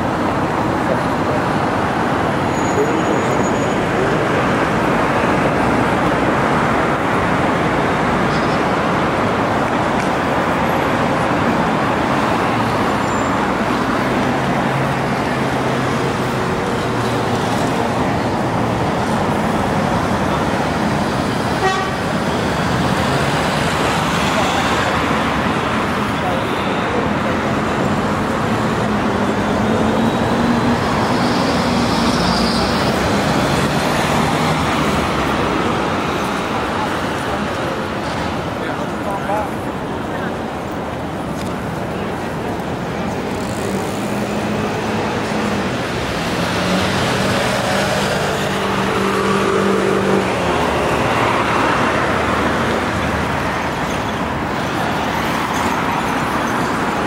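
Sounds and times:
people's voices: 0.0s - 57.0s
road traffic rush: 0.0s - 57.0s.

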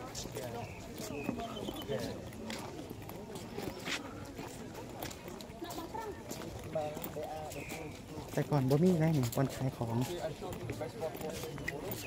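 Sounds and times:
footsteps on stone paving: 0.0s - 12.0s
people talking: 0.0s - 12.0s.

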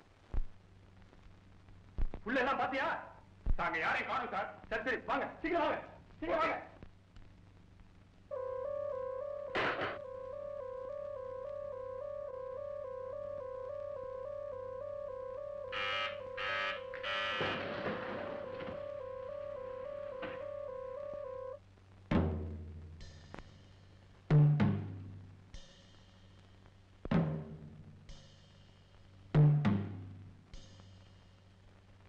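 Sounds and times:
two-tone electronic alarm warbling: 8.3s - 21.6s.

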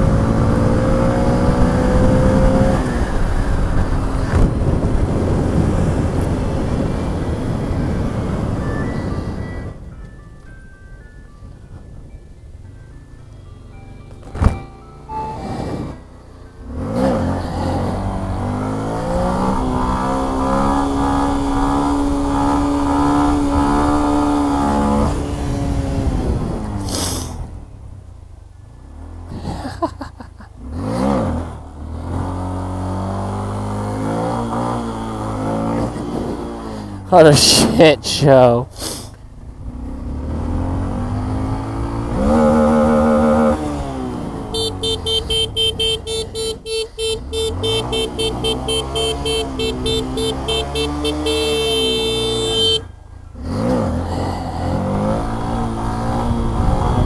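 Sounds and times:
motorcycle riding: 0.0s - 10.0s, 11.4s - 57.0s
wind rush: 1.2s - 9.8s, 55.6s - 57.0s
short electronic tune: 14.4s - 16.0s.

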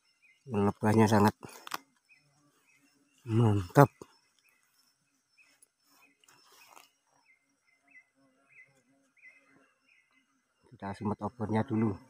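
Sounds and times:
faint forest background: 0.0s - 12.0s.

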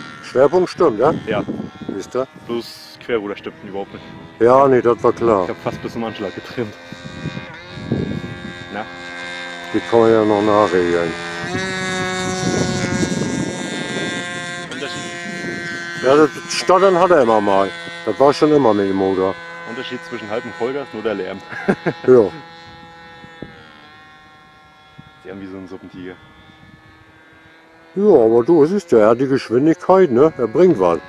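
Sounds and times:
model plane engine droning: 0.0s - 31.0s.

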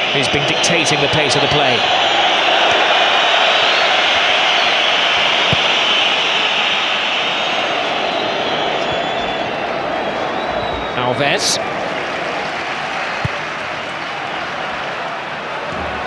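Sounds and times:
stadium crowd noise: 0.0s - 16.0s.

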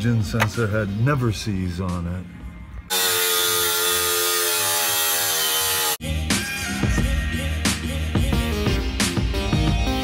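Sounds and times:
angle grinder cutting metal pipe: 2.9s - 6.0s.

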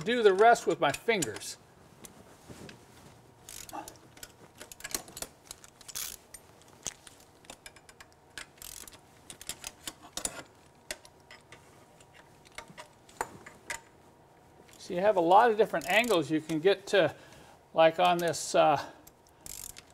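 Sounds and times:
ratchet wrench clicking: 3.5s - 3.9s, 4.6s - 6.2s, 7.5s - 11.0s, 19.0s - 19.9s.

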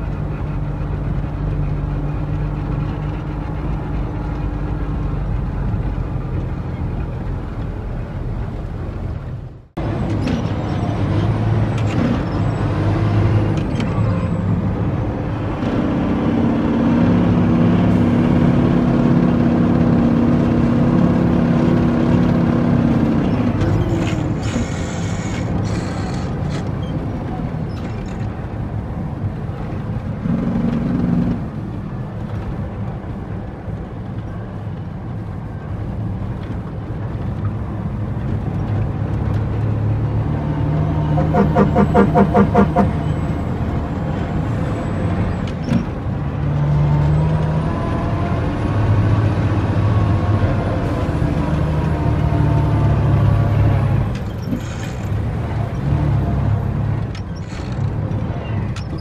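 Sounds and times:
diesel truck engine running: 0.0s - 59.0s.

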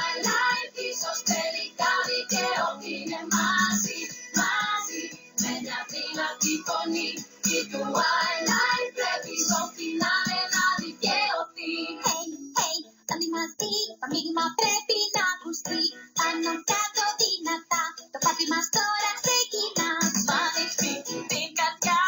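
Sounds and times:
rhythmic pop backing track: 0.0s - 22.0s
young female voices singing: 0.0s - 22.0s.

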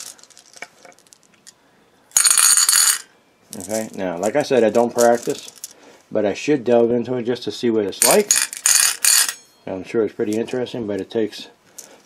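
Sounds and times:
small stones clattering in bowl: 0.0s - 1.5s, 2.2s - 5.7s.

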